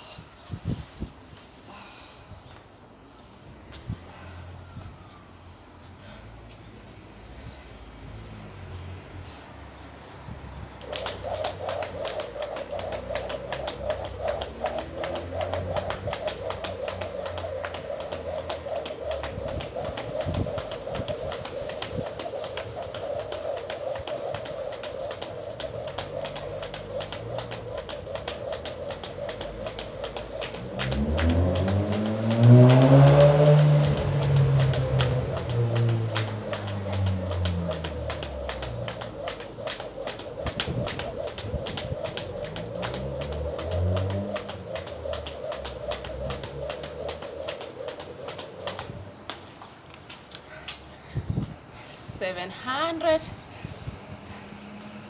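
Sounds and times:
skipping rope striking paving: 10.6 - 50.9
low sound rising and falling: 10.8 - 49.2.

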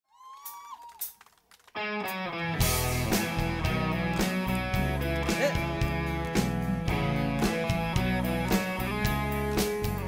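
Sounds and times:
live rock band playing: 1.8 - 10.0.

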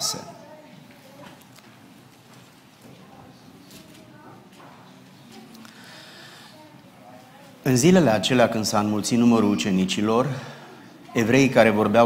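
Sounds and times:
faint murmur of voices: 0.0 - 12.0.

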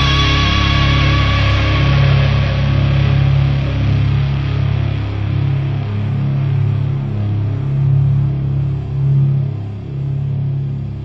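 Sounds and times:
heavy rock instrumental: 0.0 - 6.2.

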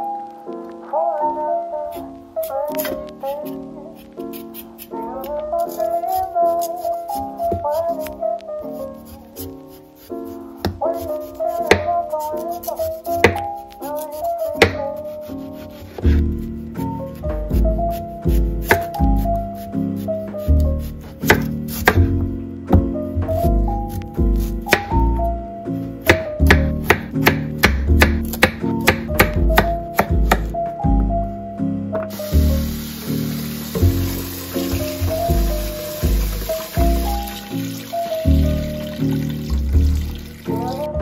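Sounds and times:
soft background music: 0.0 - 41.0
knife cutting vegetables: 2.4 - 16.5, 17.4 - 22.1, 23.4 - 25.0, 26.1 - 30.5
hands rinsing rice: 32.1 - 40.8
tap water running into pot: 32.1 - 40.8.

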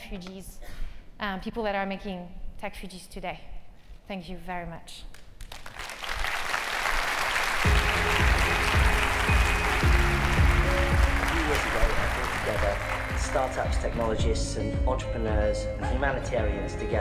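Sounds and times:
audience applause: 5.5 - 14.2
music with heavy bass line: 7.7 - 11.4.

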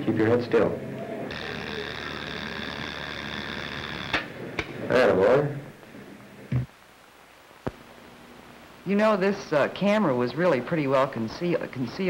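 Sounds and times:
x-ray machine buzzing: 1.2 - 5.8.

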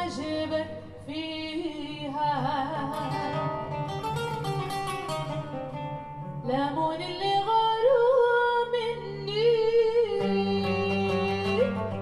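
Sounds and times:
woman singing: 0.0 - 3.9, 6.4 - 12.0
acoustic guitar plucked notes: 0.0 - 8.0, 8.8 - 12.0.

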